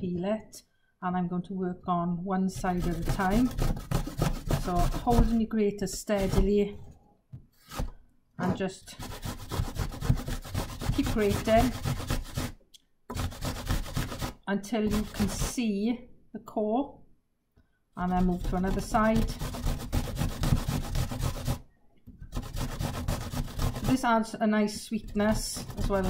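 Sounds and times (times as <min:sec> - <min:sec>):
apple grated on metal grater: 0:02.5 - 0:06.5, 0:08.9 - 0:15.6, 0:18.0 - 0:21.6, 0:22.2 - 0:26.0.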